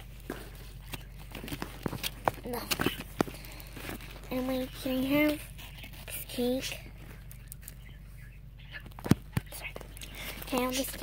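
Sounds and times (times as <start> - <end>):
handling noise: 0.0 - 6.0.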